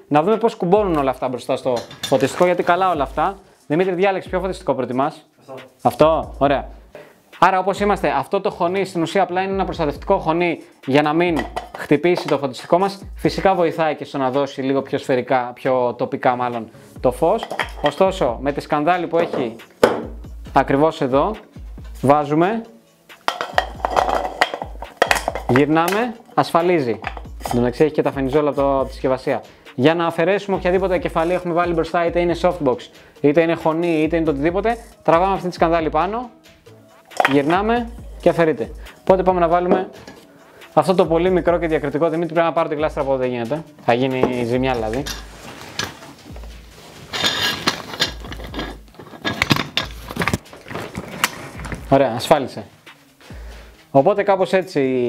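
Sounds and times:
metal scraping: 23.2s - 27.8s, 44.4s - 52.0s
fabric and frame rustling: 44.4s - 52.3s
metallic clicks and knocks: 47.1s - 51.8s.

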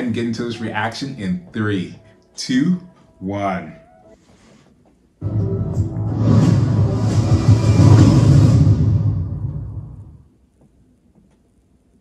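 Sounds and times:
deep bass rumble: 5.2s - 10.2s.

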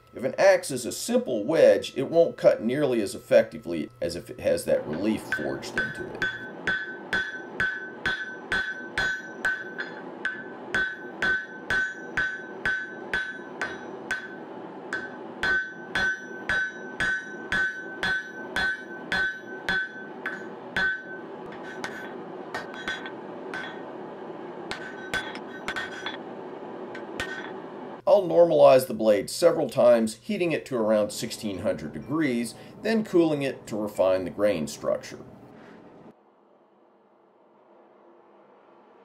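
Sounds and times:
hammer striking metal on anvil: 4.9s - 23.9s, 24.7s - 26.2s, 27.0s - 27.6s.

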